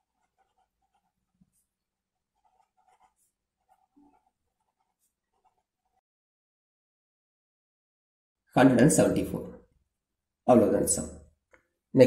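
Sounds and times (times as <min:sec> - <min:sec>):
marker pen writing: 0:00.0 - 0:06.0.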